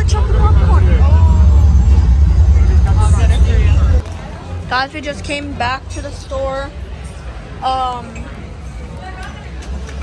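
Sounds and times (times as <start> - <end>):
loud low rumble: 0.0 - 4.8
faint voices of people: 0.0 - 10.0.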